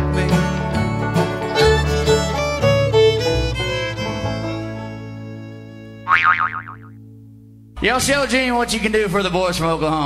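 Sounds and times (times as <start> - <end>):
fiddle and guitar chord ringing: 0.4 - 6.0
comic boing sound effect: 6.1 - 7.0.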